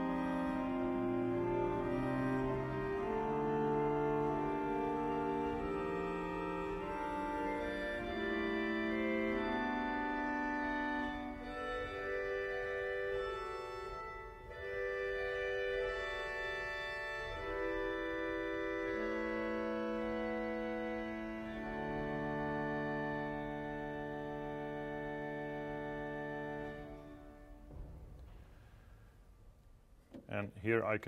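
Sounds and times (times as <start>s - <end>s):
pipe organ playing slow chords: 0.0s - 28.2s.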